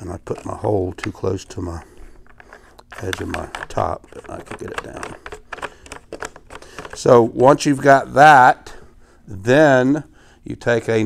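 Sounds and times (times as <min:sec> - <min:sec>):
light plastic clicks and scrapes: 0:00.2 - 0:07.2.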